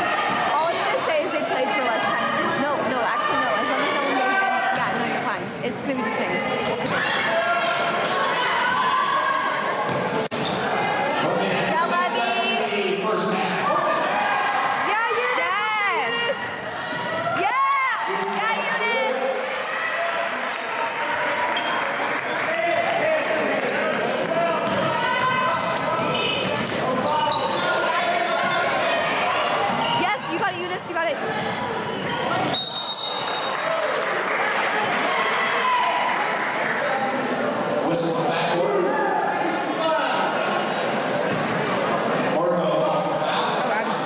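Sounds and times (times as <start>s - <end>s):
spectators talking and shouting: 0.0s - 44.0s
whistle blast: 32.5s - 33.5s.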